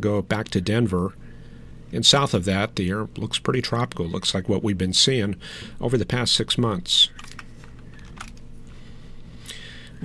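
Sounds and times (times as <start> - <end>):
low electrical hum: 0.0 - 10.0
keyboard and mouse clicking: 7.1 - 8.4.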